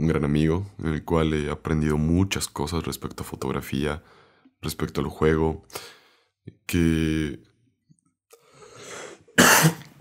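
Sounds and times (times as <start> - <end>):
man drawing breath: 8.4 - 9.3
man coughing: 9.3 - 10.0.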